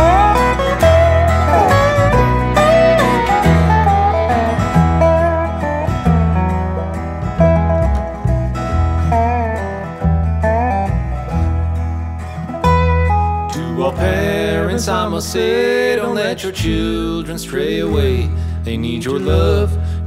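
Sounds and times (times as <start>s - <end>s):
bluegrass string band playing: 0.0s - 17.2s.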